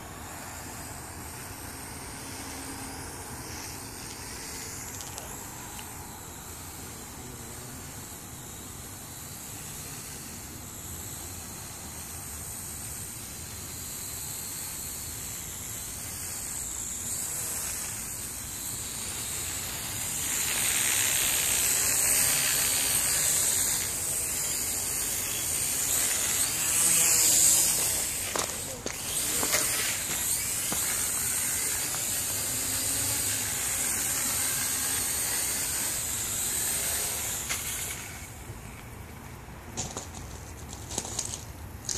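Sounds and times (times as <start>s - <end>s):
quadcopter buzzing whine: 0.0s - 41.9s.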